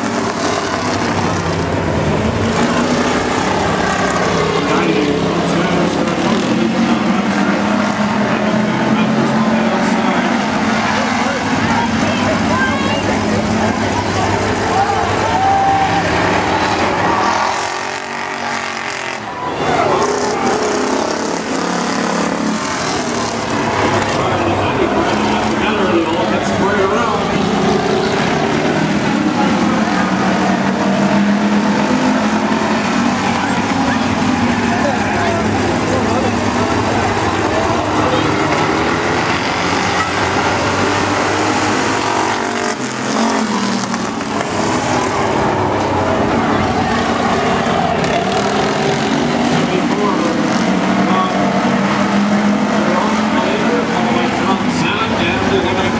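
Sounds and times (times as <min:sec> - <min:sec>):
race car engines droning: 0:00.0 - 0:55.9.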